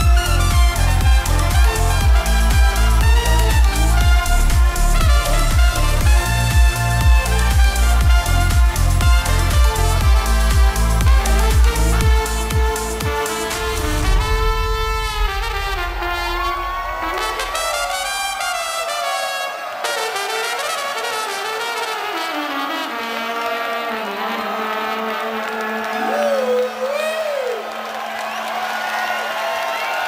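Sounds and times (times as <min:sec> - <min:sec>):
electronic dance beat: 0:00.0 - 0:20.5
trumpet melody: 0:00.0 - 0:26.8.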